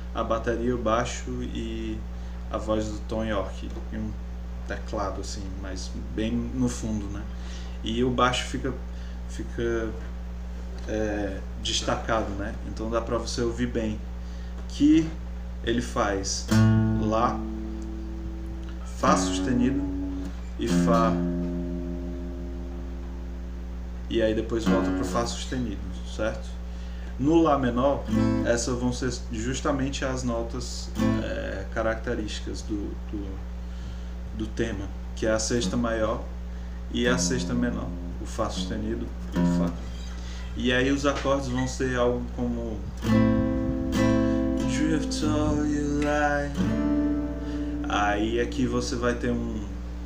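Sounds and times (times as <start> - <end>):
low steady hum: 0.0 - 50.0
acoustic guitar note ringing: 16.5 - 23.8, 24.6 - 25.4, 28.1 - 28.6, 37.0 - 42.0, 43.0 - 49.5.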